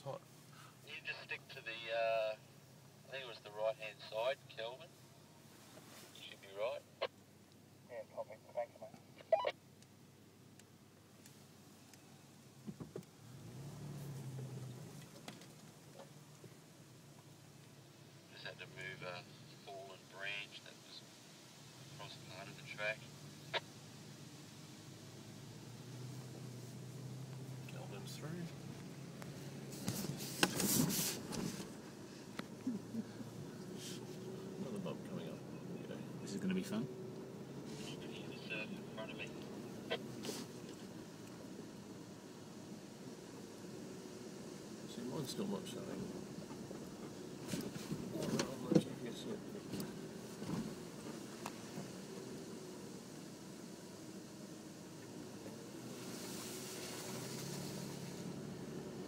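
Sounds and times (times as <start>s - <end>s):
engine drone in car cabin: 0.0s - 59.0s
rustling noise: 5.4s - 6.2s, 29.2s - 32.6s, 46.5s - 48.4s
knocks and rattles over bumps: 12.6s - 13.2s, 14.6s - 16.6s
hiss: 55.8s - 58.3s.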